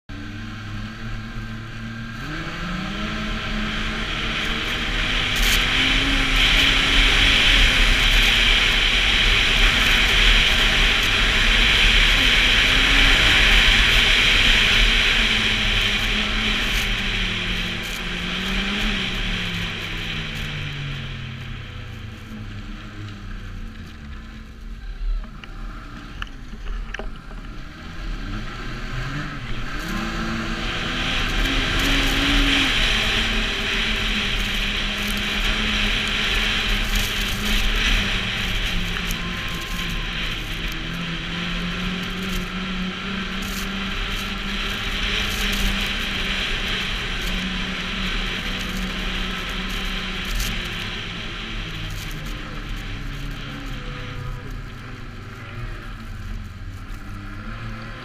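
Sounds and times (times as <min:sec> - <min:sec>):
snowmobile engine running: 0:00.1 - 0:58.0.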